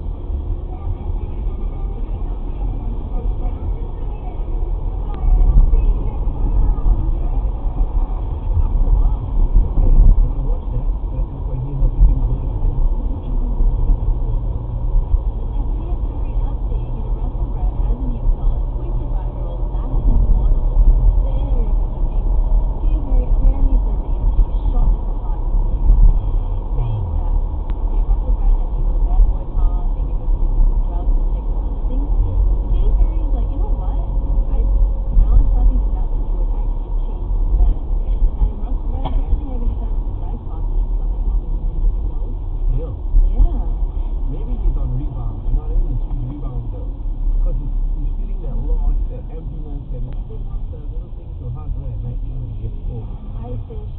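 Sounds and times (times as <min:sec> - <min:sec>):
indistinct voices: 0:00.0 - 0:53.9
road and engine rumble: 0:00.0 - 0:53.9.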